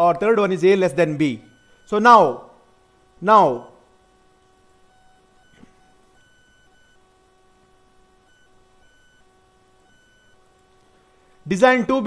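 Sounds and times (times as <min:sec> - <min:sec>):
faint electrical whine: 0:00.0 - 0:12.0.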